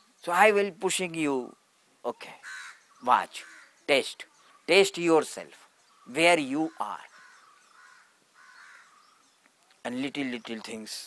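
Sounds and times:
bird calling: 1.4s - 10.9s.

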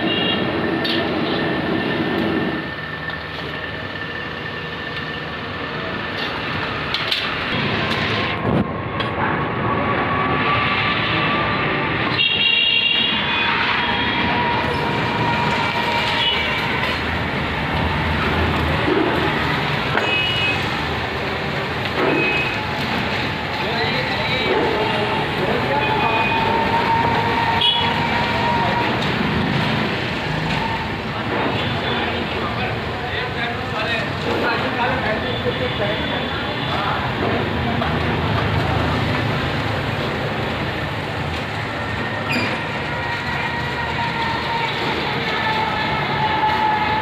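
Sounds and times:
traffic noise: 0.0s - 47.0s
indistinct voices: 13.0s - 47.0s.

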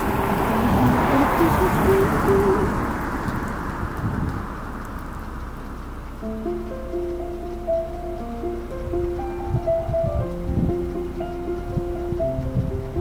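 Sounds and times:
wind gusting over microphone: 0.0s - 13.0s.

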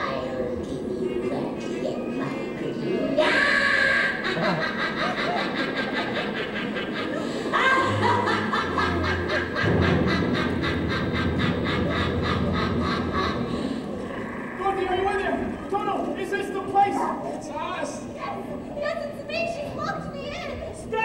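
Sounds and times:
witch cackling laugh: 3.2s - 13.9s
low hum: 6.2s - 17.4s.

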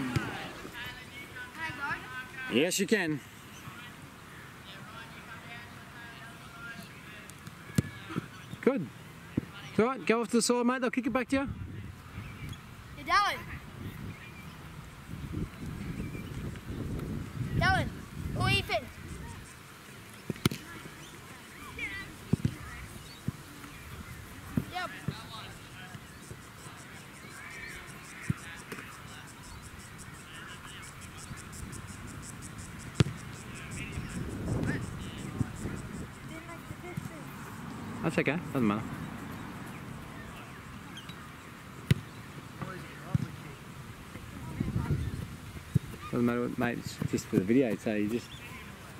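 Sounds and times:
low outdoor background: 0.0s - 48.9s.

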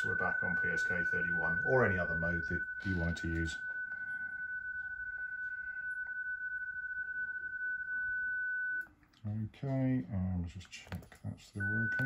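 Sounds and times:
steady high tone: 0.0s - 8.9s.

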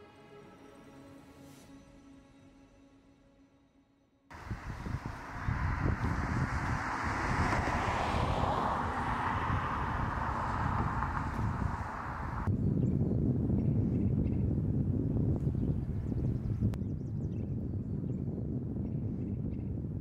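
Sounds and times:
wind rumbling on microphone: 4.3s - 20.0s
traffic hiss: 4.4s - 12.5s.

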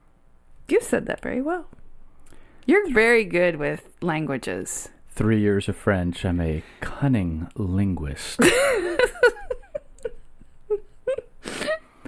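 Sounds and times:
quiet laughter: 8.4s - 11.4s.

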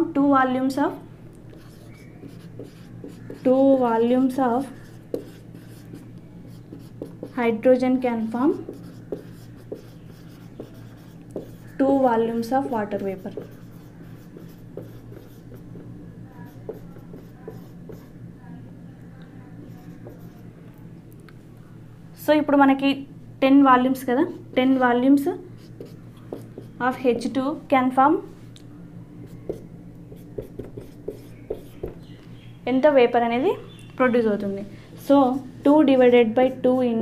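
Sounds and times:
marker pen writing on whiteboard: 1.5s - 3.9s, 4.6s - 7.4s, 8.4s - 18.1s, 19.7s - 20.4s, 25.6s - 26.8s, 29.3s - 32.1s.

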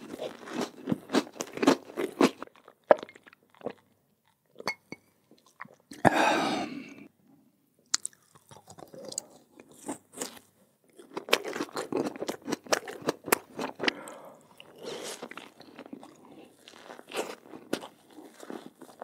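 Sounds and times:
crunching and chewing cookies: 0.0s - 4.6s, 7.8s - 19.0s.

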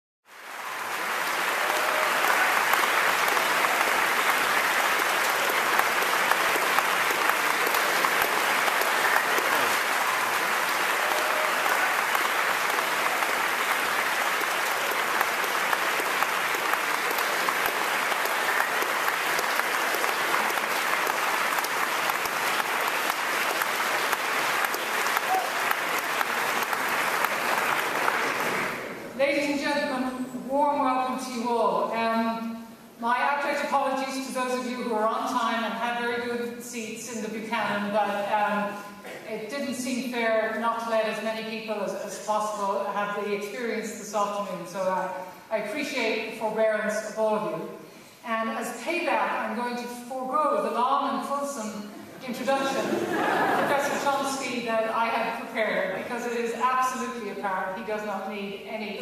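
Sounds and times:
audience applause: 0.3s - 29.1s, 52.6s - 54.2s.

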